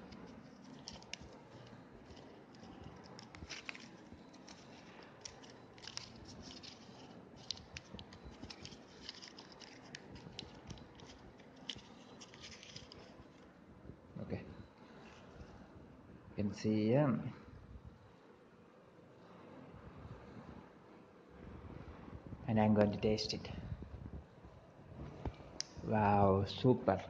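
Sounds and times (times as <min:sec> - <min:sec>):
foil wrapper crinkling: 0:00.0 - 0:13.4.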